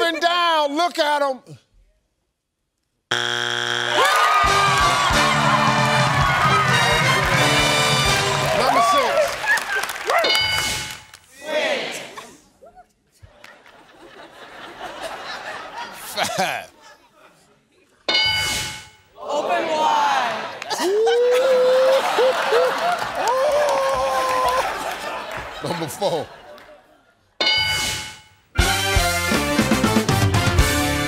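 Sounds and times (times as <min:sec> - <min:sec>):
harsh game-show buzzer: 0:03.1 - 0:09.0
crowd cheering: 0:03.8 - 0:12.3, 0:19.2 - 0:26.9
upbeat theme music: 0:04.0 - 0:11.2, 0:27.5 - 0:31.0.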